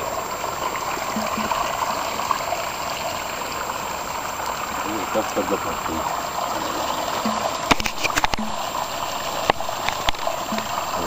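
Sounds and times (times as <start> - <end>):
water running over rocks: 0.0 - 11.0.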